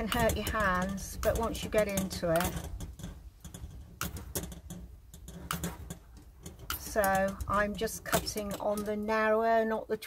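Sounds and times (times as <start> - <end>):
metal snips cutting wire: 0.0 - 9.4.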